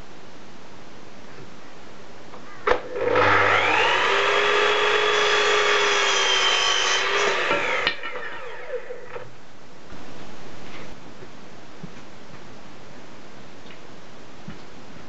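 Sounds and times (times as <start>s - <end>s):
saw cutting wood: 2.8s - 9.2s
mitre saw whining: 2.8s - 9.3s.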